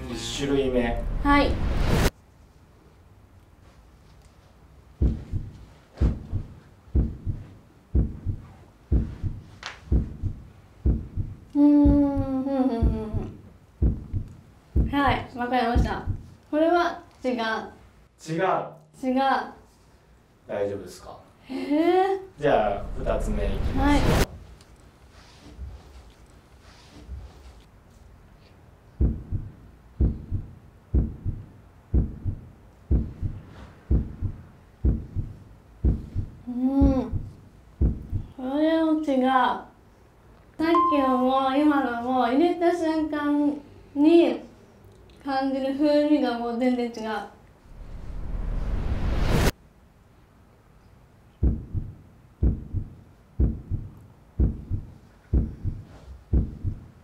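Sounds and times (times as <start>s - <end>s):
heartbeat double thump: 5.0s - 16.3s, 29.0s - 38.4s, 51.4s - 57.0s.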